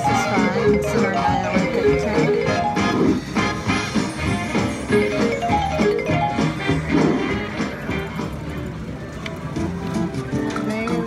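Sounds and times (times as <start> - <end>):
casino voices: 0.0 - 3.2
slot machine tune and chimes: 0.0 - 7.5.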